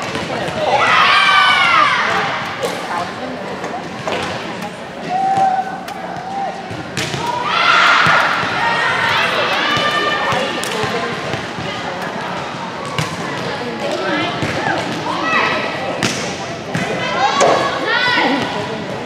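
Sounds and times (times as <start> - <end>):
volleyballs hit and bouncing: 3.6 - 8.6, 9.3 - 15.3, 15.9 - 18.8.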